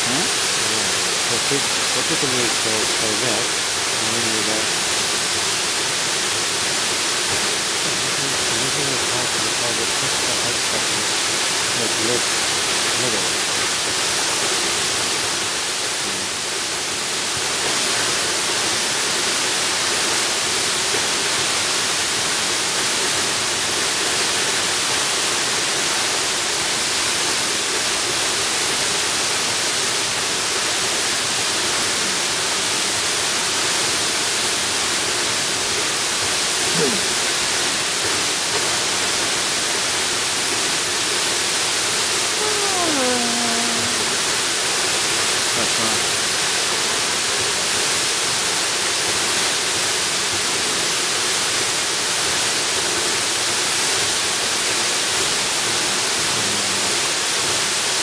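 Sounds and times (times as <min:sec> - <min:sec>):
waterfall rushing: 0:00.0 - 0:58.0.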